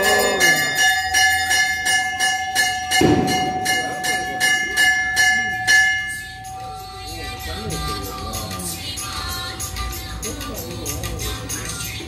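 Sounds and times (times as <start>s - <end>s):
metal temple bell ringing: 0.0s - 9.0s.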